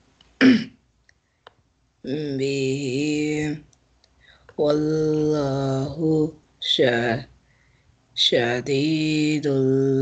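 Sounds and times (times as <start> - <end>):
person clearing throat: 0.4 - 0.8.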